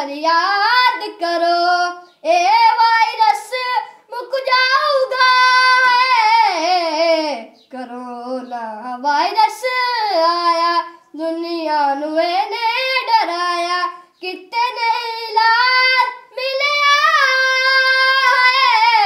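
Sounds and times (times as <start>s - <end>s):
boy singing unaccompanied: 0.0s - 19.0s.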